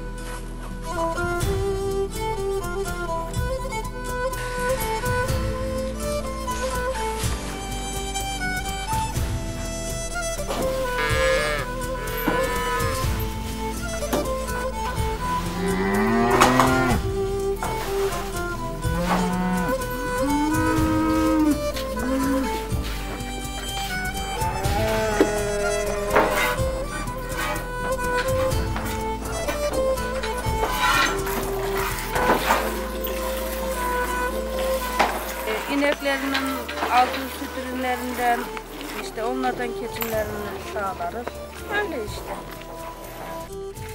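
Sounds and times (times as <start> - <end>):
instrumental music with held notes: 0.0 - 43.9
cattle mooing: 10.8 - 13.1, 15.4 - 17.1, 18.8 - 22.7, 24.4 - 27.6.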